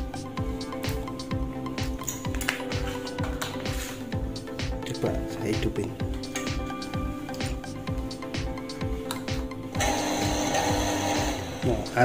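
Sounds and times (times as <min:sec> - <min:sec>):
background music with beat: 0:00.0 - 0:12.0
electric motor running: 0:09.8 - 0:11.9.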